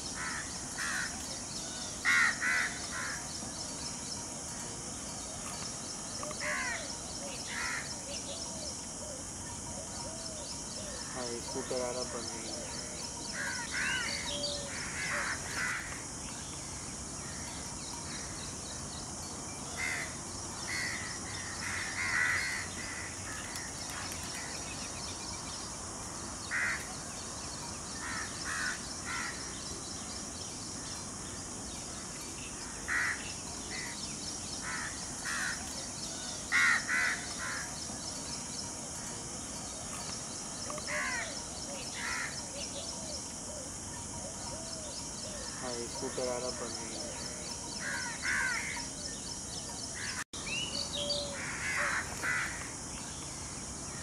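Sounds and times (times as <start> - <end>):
wild birds calling: 0.0 - 3.8, 4.5 - 54.0
steady high hiss: 0.0 - 54.0.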